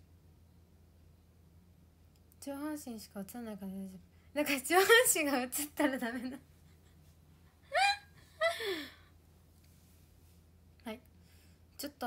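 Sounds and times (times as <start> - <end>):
woman laughing: 4.8 - 7.0, 7.6 - 9.0.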